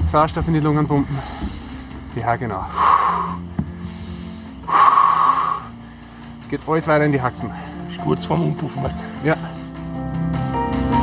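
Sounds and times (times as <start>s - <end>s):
man breathing heavily: 1.0s - 6.5s, 7.4s - 8.0s, 9.0s - 10.3s.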